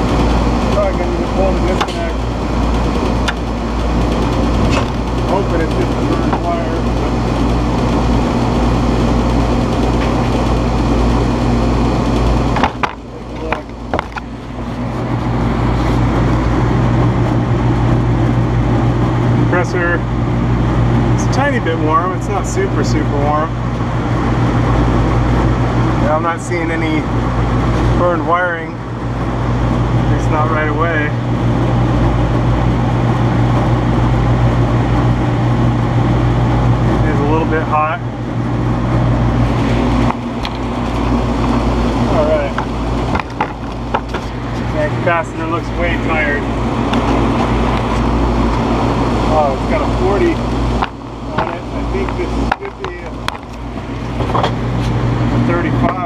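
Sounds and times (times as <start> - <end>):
fan motor humming: 0.0 - 56.0.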